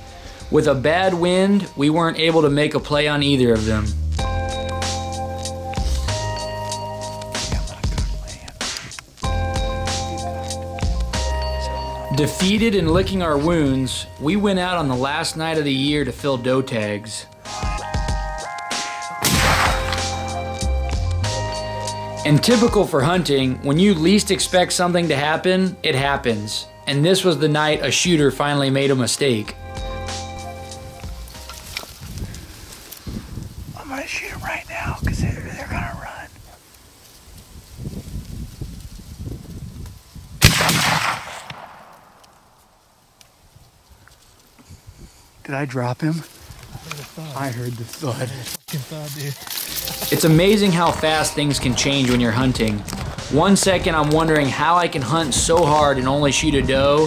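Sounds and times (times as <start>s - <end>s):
background music: 0.0s - 32.4s, 49.5s - 57.0s
gunshot blast: 19.2s - 20.1s, 40.4s - 42.2s
rifle shot booming: 19.2s - 20.1s, 40.4s - 42.2s.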